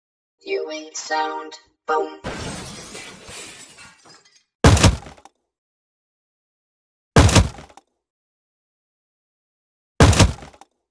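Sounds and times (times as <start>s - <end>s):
loud crunching impacts: 10.0s - 10.6s.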